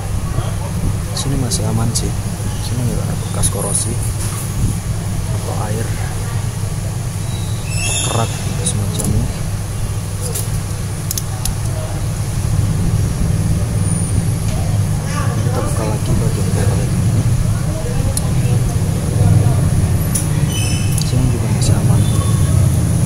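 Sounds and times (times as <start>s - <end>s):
low rumble: 0.0s - 23.0s.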